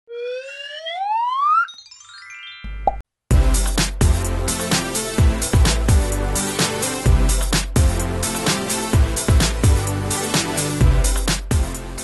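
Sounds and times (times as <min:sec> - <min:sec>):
whistle-like tone gliding upward: 0:00.1 - 0:02.3
electronic dance music: 0:03.3 - 0:12.0.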